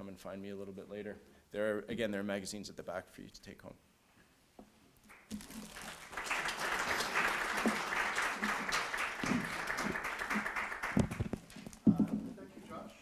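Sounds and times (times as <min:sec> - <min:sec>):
audience applauding: 0:05.1 - 0:11.7.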